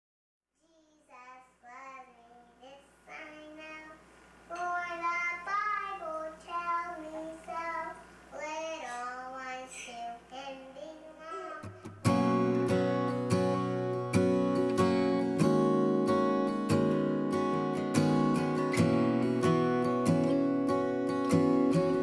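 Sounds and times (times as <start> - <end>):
high voice singing unaccompanied: 0.7 - 11.9
strummed acoustic guitar: 11.3 - 22.0.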